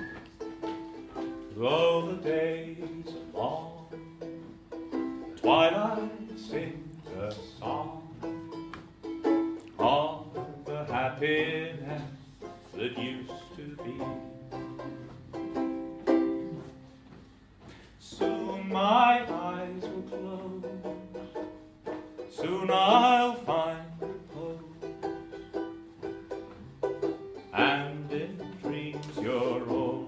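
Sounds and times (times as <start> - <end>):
banjolele strumming chords: 0.0 - 16.9, 18.0 - 30.0
person singing: 1.4 - 4.5, 5.2 - 8.6, 9.6 - 15.2, 18.0 - 25.4, 27.4 - 30.0.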